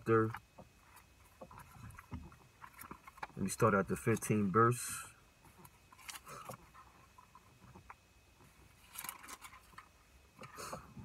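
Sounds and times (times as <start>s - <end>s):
paper pages rustling: 8.8s - 9.9s.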